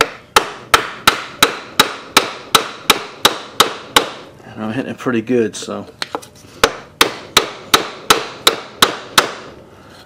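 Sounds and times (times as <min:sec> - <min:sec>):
hammer pounding wooden block: 0:00.0 - 0:04.3, 0:06.6 - 0:09.5.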